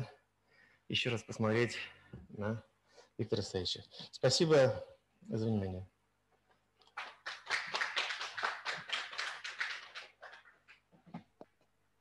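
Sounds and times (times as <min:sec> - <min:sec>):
audience applauding: 0:06.9 - 0:10.8.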